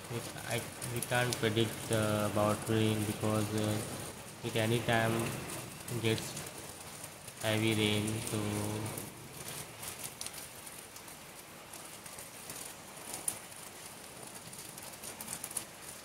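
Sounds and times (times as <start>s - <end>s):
light rain patter: 0.0s - 16.0s.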